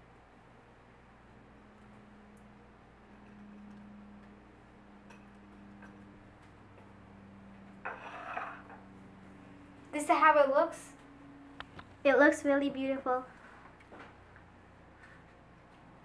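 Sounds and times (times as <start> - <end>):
low steady hum: 0.0 - 16.0.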